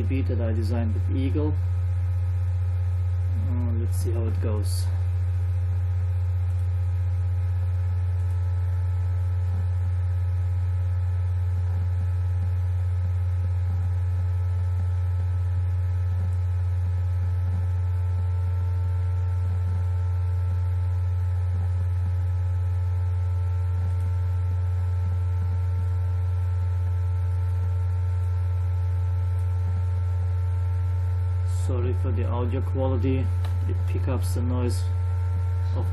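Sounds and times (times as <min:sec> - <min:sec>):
laptop cooling fan hum: 0:00.0 - 0:35.9.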